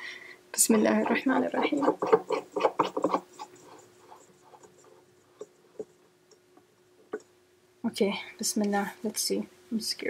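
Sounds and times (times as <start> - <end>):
bulb threads scraping: 0.8 - 6.1.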